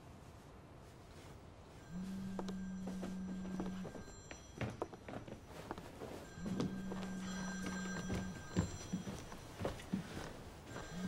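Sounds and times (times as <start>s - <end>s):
footsteps: 0.9s - 11.0s
phone ringing with buzzing tone: 1.8s - 11.0s.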